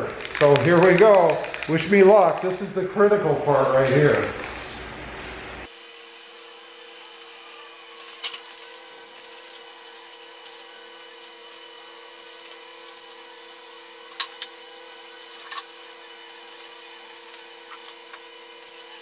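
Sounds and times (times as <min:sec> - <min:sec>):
spray paint can hissing: 0:05.6 - 0:19.0.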